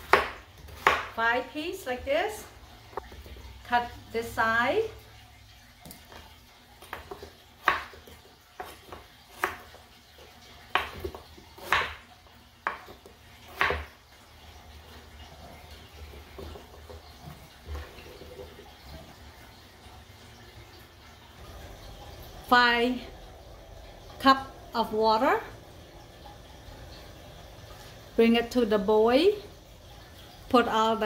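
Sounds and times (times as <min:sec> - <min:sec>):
knife chopping on wooden board: 0:00.0 - 0:01.1, 0:10.7 - 0:12.0, 0:12.6 - 0:13.9.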